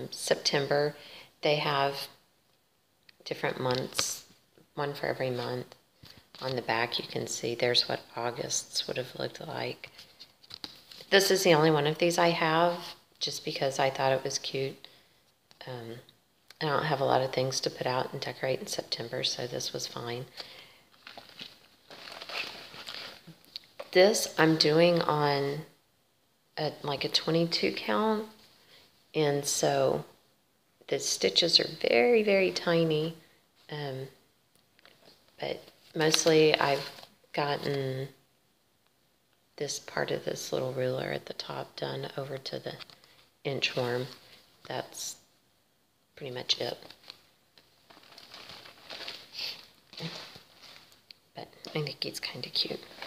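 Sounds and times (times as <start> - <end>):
soft rustling of handling: 3.1 - 7.9, 9.4 - 11.5, 19.7 - 24.3, 34.5 - 37.8, 42.7 - 44.8, 46.6 - 53.0.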